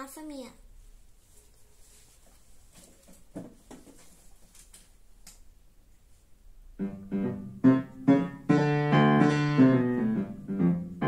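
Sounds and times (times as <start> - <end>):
faint knocks and shuffles: 0.6 - 5.0
upright piano notes: 6.8 - 11.0.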